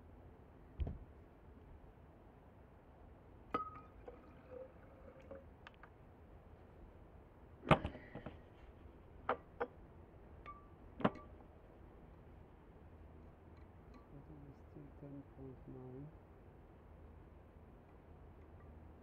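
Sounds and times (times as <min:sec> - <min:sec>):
glass jars clinking together: 0:03.6 - 0:05.4.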